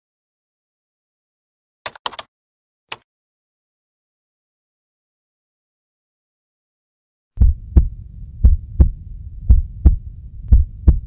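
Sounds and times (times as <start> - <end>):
heartbeat double thumps: 7.4 - 11.0
low hum: 7.4 - 11.0.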